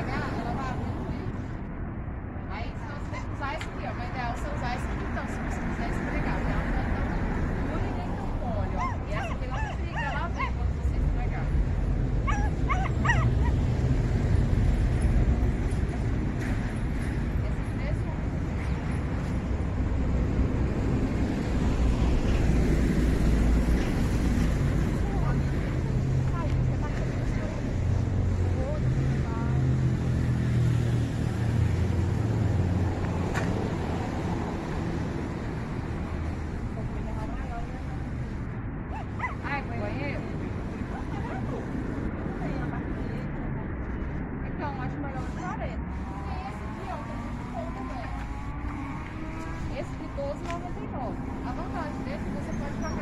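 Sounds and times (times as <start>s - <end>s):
indistinct voices talking: 0.0s - 30.1s, 31.0s - 53.0s
street traffic rumble: 0.0s - 53.0s.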